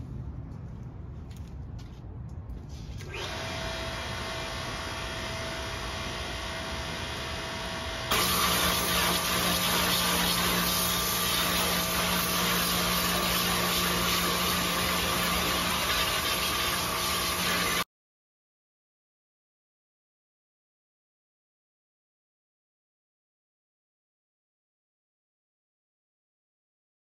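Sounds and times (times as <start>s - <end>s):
pressure washer motor running: 3.0s - 17.9s
water jet spraying on metal: 8.1s - 17.8s.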